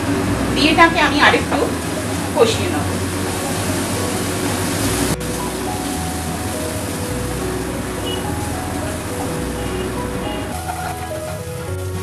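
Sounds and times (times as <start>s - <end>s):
soft background music: 0.0s - 12.0s
spices sizzling in a wok: 0.2s - 12.0s.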